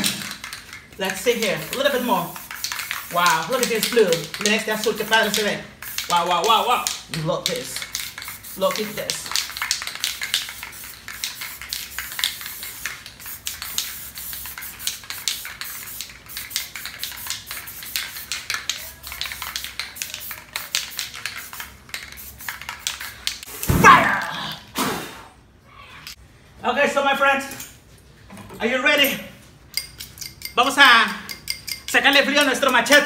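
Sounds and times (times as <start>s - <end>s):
spray paint cans hissing: 0.0s - 23.8s, 31.2s - 33.0s.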